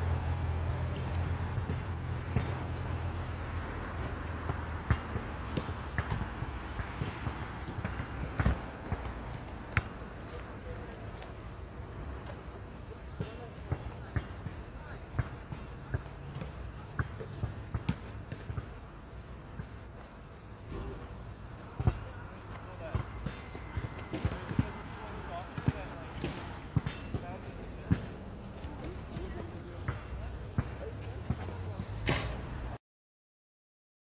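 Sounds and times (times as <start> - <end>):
basketball bouncing on hard court: 0.7 - 2.8, 3.9 - 11.3, 13.1 - 20.1, 20.7 - 31.5.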